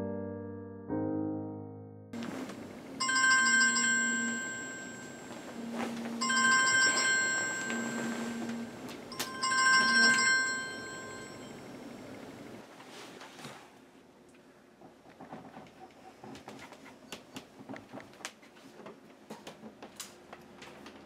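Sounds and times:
mobile phone ringtone trilling: 3.0 - 12.0
phone buzzing: 3.0 - 12.5.

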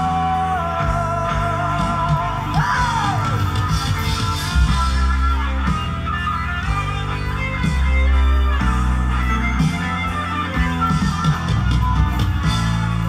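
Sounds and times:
pop song from vinyl record: 0.0 - 13.0.

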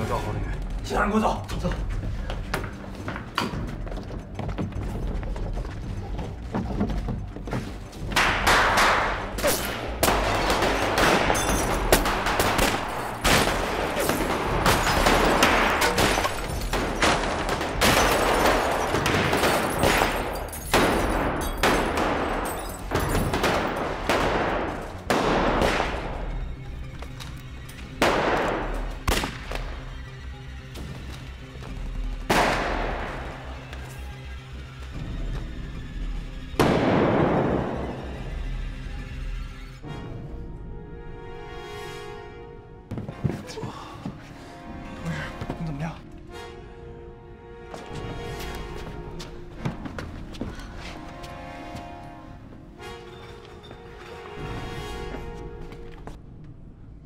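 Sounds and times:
background music: 0.0 - 57.0
gunshots: 8.2 - 26.3, 36.6 - 37.9.

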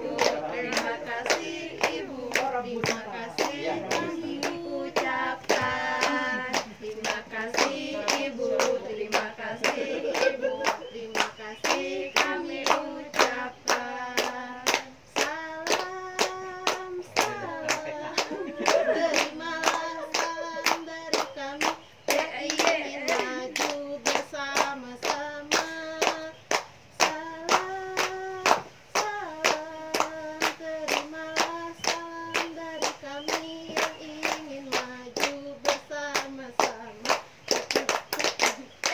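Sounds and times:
hands clapping in a steady beat: 0.0 - 38.9
women singing together: 0.0 - 38.9.

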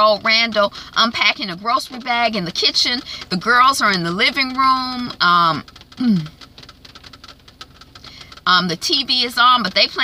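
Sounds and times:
person saying um: 6.0 - 6.3.

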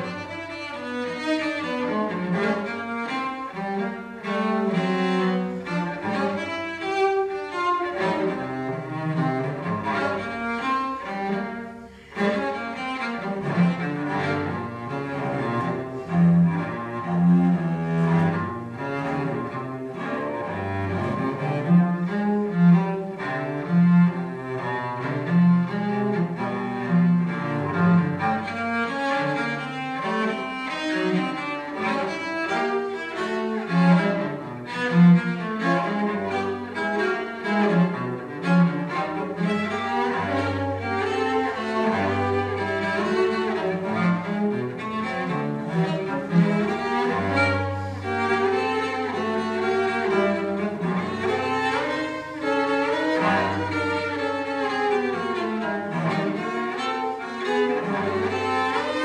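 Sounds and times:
bowed cello: 0.0 - 59.0.

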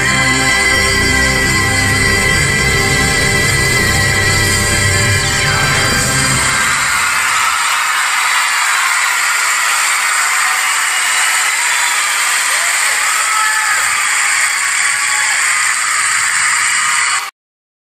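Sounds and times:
audience clapping and cheering: 0.0 - 17.3.

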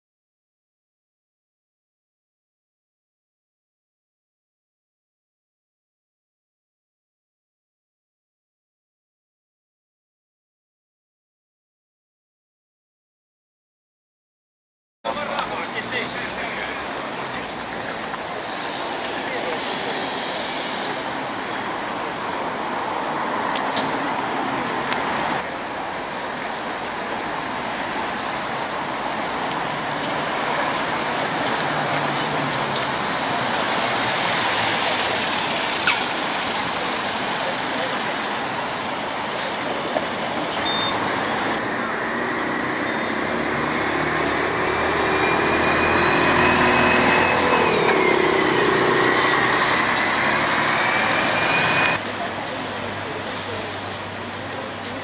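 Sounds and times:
street traffic: 15.0 - 55.0
coach engine and drivetrain whine: 15.1 - 55.0.

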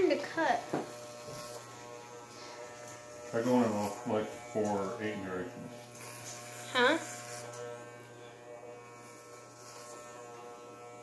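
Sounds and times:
electric hair clippers buzzing: 0.0 - 11.0.

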